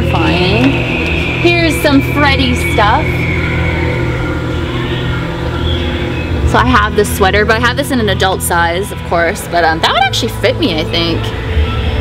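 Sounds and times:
faint held tones: 0.0 - 12.0
low rumbling hum: 0.0 - 12.0.

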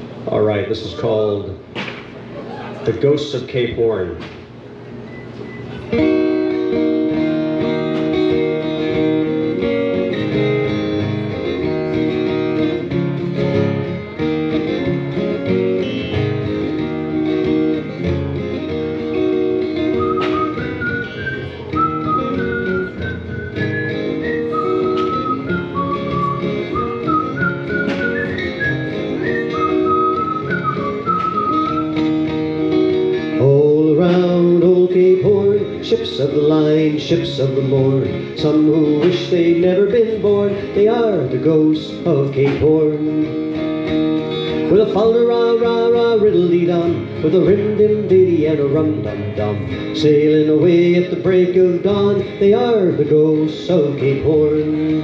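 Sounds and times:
acoustic guitar strumming: 4.1 - 55.0
whistled melody: 19.8 - 32.1
person singing: 33.4 - 43.4.

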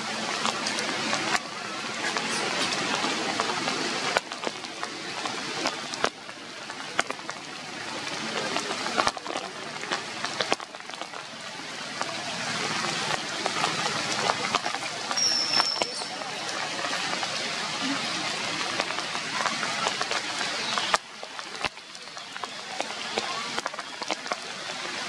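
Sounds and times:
rain falling steadily: 0.0 - 25.0
sharp taps of raindrops: 0.0 - 25.0.

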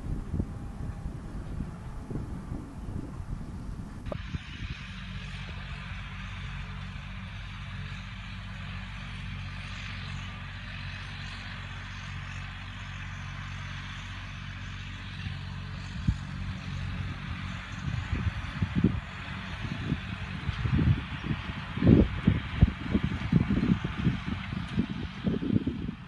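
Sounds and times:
distant tractor engine hum: 0.0 - 26.0.

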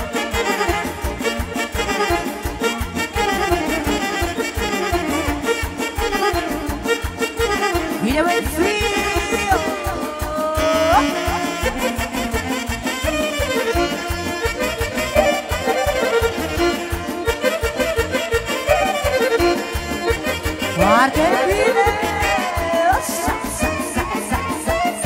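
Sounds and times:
live band dance music: 0.0 - 25.0
saxophone melody: 0.0 - 25.0.

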